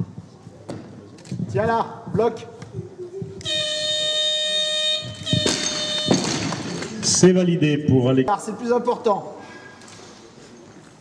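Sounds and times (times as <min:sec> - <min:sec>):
electronic buzzer tone: 0:03.4 - 0:06.8.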